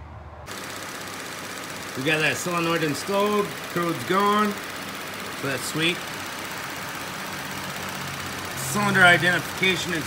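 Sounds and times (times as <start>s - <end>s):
car engine idling: 0.5s - 10.0s
fast even engine ticking: 0.5s - 10.0s.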